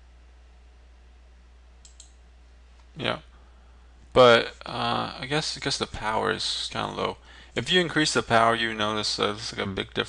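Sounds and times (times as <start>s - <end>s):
steady low hum: 0.0s - 10.0s
computer mouse clicks: 1.8s - 2.2s.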